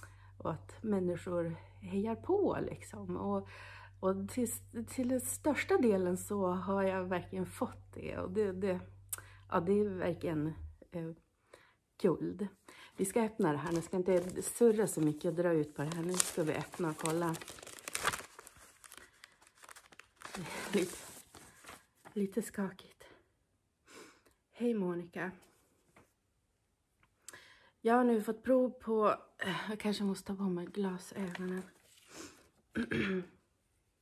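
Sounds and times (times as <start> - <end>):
woman taking a breath: 3.4 - 4.0, 11.4 - 11.8, 12.6 - 13.0, 18.8 - 19.6, 27.3 - 27.8
paper rustling and crinkling: 13.4 - 22.4, 31.2 - 32.4
woman clearing her throat: 32.7 - 33.4.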